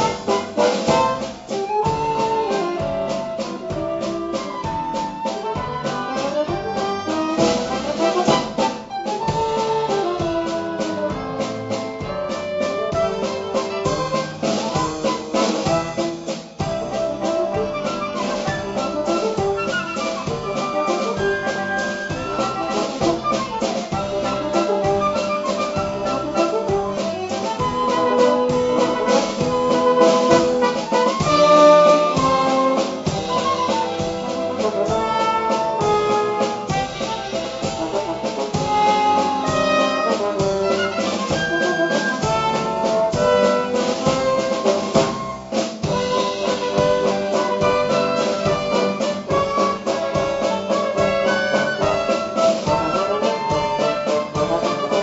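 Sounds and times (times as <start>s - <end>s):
pit orchestra playing a waltz: 0.0s - 55.0s
trumpets and brass: 0.0s - 55.0s.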